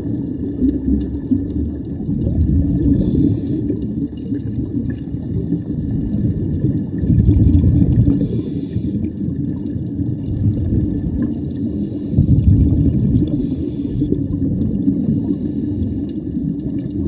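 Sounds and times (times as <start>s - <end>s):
exhaled air bubbling underwater: 0.0s - 17.0s
regulator inhalation hiss: 2.9s - 3.7s, 8.2s - 9.0s, 13.3s - 14.1s.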